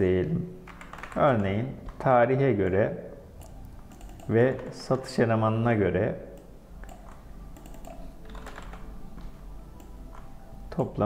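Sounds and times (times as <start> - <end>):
computer keyboard key clicks: 0.7 - 2.0, 3.4 - 4.7, 6.4 - 8.8.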